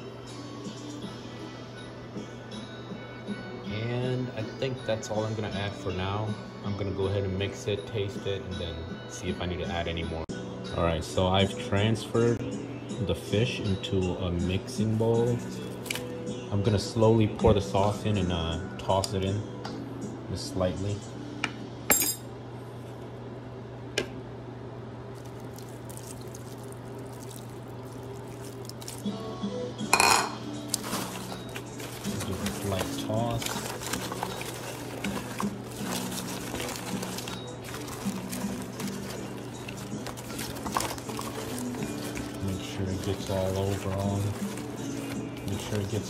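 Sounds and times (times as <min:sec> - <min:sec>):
utensil clinking glass bowl: 0:29.9 - 0:46.0.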